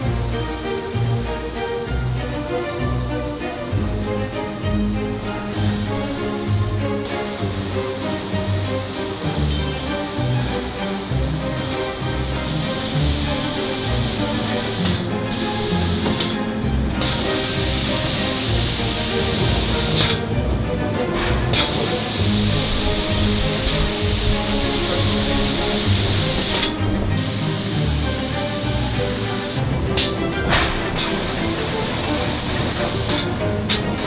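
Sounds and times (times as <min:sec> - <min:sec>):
background music: 0:00.0 - 0:34.0
loud steady hiss: 0:07.3 - 0:20.3, 0:21.5 - 0:30.2, 0:31.0 - 0:34.0.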